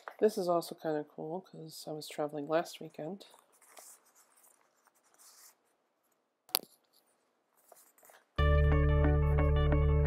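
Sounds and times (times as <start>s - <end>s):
paper sheets rustling: 3.2s - 6.2s, 6.8s - 8.4s.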